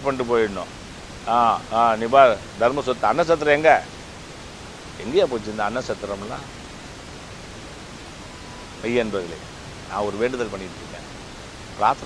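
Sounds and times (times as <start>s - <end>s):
man speaking: 0.0s - 0.7s, 1.3s - 3.9s, 5.0s - 6.5s, 8.8s - 11.0s, 11.8s - 12.0s
steady hiss: 0.0s - 12.0s.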